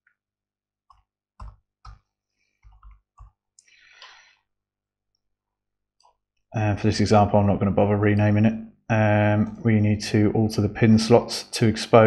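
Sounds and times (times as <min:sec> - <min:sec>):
short breath: 0:03.6 - 0:04.5.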